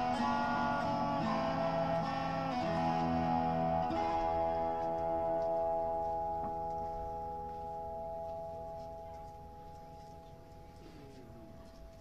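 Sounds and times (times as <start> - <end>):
lap slide guitar chord ringing: 0.0 - 11.1.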